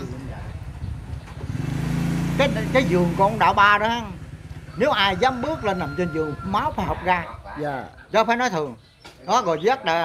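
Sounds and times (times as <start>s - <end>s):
vehicle engine running: 0.0s - 7.4s.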